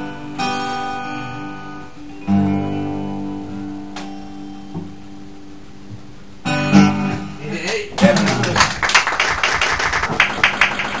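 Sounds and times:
audience applauding: 7.6s - 11.0s.

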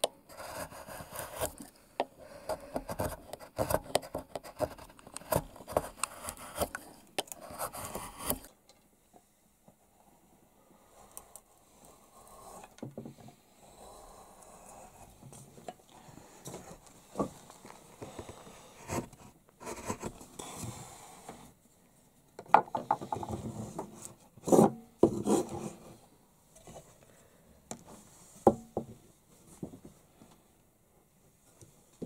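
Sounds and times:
chisel scraping wood: 0.3s - 8.5s, 22.8s - 25.9s.

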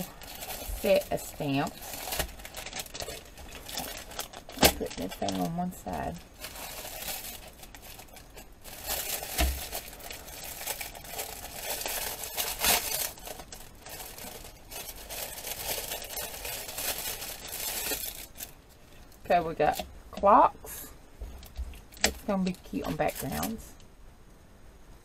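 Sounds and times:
plastic packaging crinkling: 0.0s - 20.3s, 21.2s - 23.8s.

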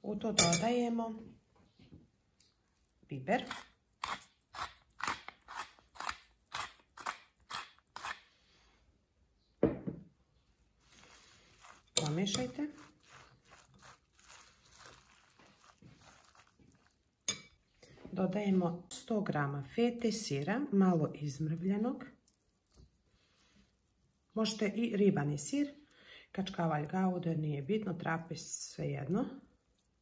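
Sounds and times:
spoon stirring wet vegetables in bowl: 0.2s - 0.9s, 10.6s - 30.0s.

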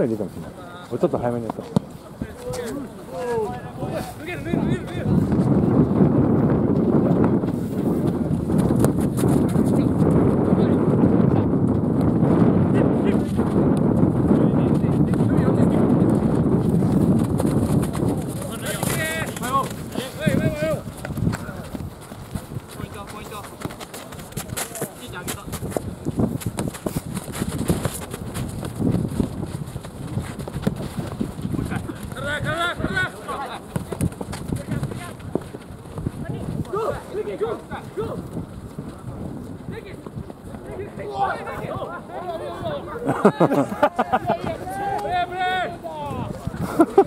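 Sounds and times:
players' voices: 0.0s - 47.0s
running footsteps and ball thuds: 0.0s - 47.0s
light taps of ball play: 1.4s - 2.8s
wind rumble on microphone: 3.2s - 43.1s, 43.7s - 47.0s.

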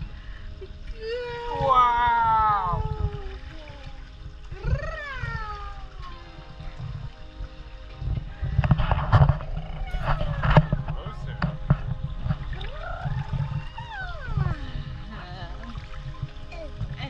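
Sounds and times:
pool water splashing: 0.0s - 17.0s
baby squealing: 9.8s - 10.8s.

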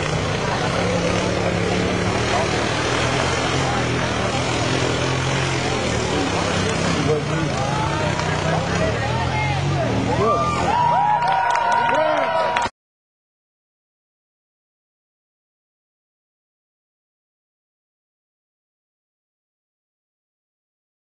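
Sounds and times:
atv engines running: 0.0s - 12.6s
crowd talking: 0.0s - 12.7s.

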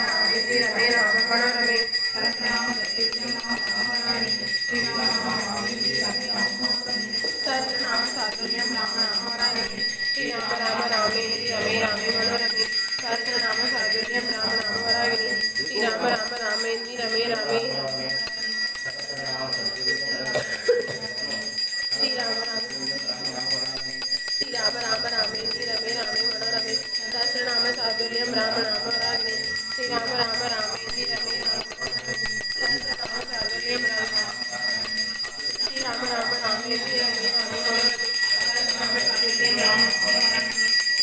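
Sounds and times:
ritual bell ringing: 0.0s - 41.0s
voices: 0.0s - 41.0s.

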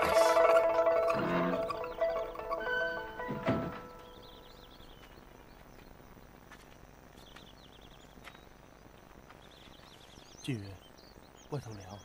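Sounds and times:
music of sustained notes: 0.0s - 5.1s.

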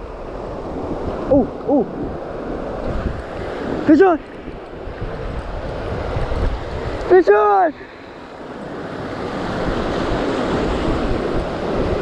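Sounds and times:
ocean surf washing in shallows: 0.0s - 12.0s
wind rumbling on microphone: 0.0s - 12.0s.

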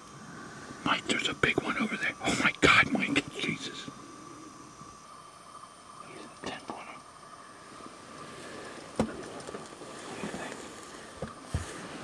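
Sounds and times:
faint steady tone: 0.0s - 12.0s
faint whispering: 0.7s - 4.8s, 6.0s - 7.2s, 10.0s - 10.7s.

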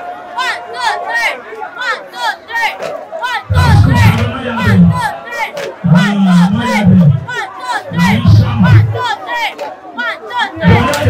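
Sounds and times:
group shouting in unison: 0.4s - 11.0s
lead voice calling out: 3.2s - 9.4s, 10.0s - 11.0s.

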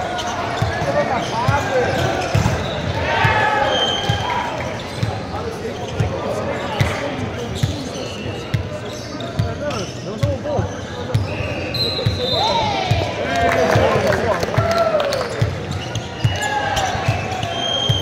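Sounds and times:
sneaker squeaks: 0.0s - 13.0s, 15.3s - 18.0s
ball bouncing on court floor: 0.2s - 3.4s.

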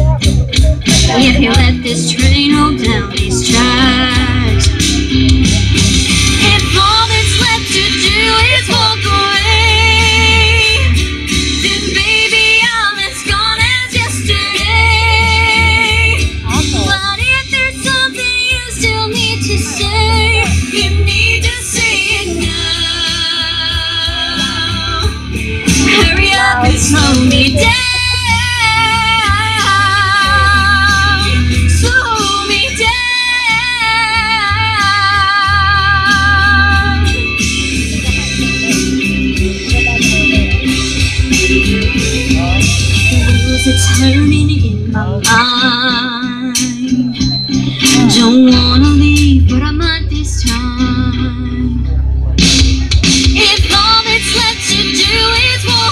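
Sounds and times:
instrumental backing music: 0.0s - 55.9s
woman singing into microphone: 0.1s - 5.0s, 6.2s - 37.4s, 41.2s - 52.0s, 53.3s - 55.9s.

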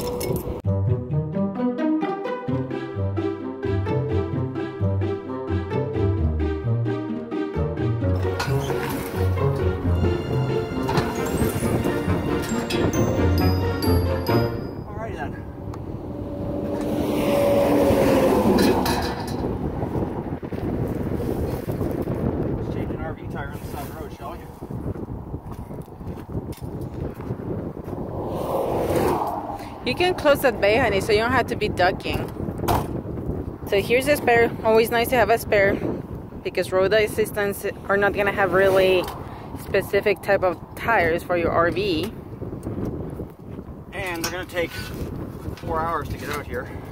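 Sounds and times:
brass background music: 0.6s - 18.9s
highway road noise: 7.8s - 46.9s
vehicle passing loudly: 11.5s - 20.9s, 27.8s - 32.5s.

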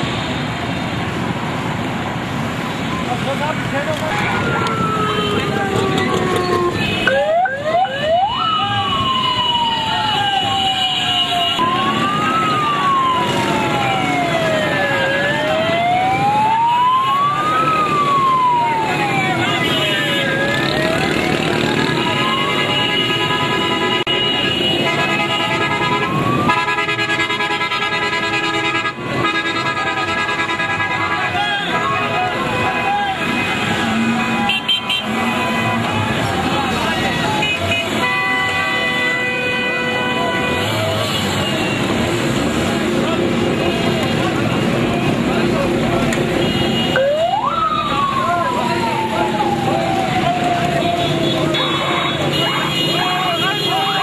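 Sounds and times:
motorcycle and van engines: 0.0s - 27.2s, 27.9s - 39.2s, 40.1s - 54.0s
traffic: 0.0s - 54.0s
police siren wail: 2.9s - 24.1s, 24.8s - 52.3s, 52.9s - 54.0s
vehicle horns blaring: 6.7s - 7.4s, 19.4s - 20.4s, 21.8s - 36.0s, 37.2s - 42.0s, 46.3s - 47.0s, 51.0s - 54.0s
many voices: 31.4s - 39.0s, 39.9s - 54.0s.

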